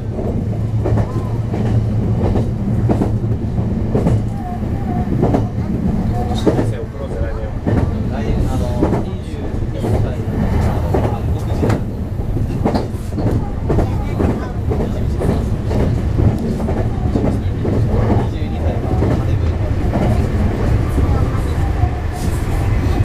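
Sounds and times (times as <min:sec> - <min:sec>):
train wheels rumbling: 0:00.0 - 0:23.0.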